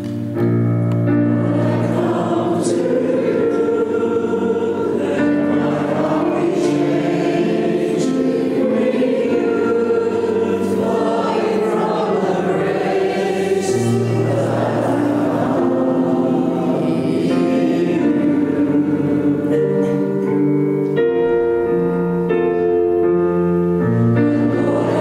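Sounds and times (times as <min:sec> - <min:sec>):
keyboard sustained low chords: 0:00.0 - 0:25.0
congregation singing: 0:00.1 - 0:22.2, 0:23.0 - 0:25.0.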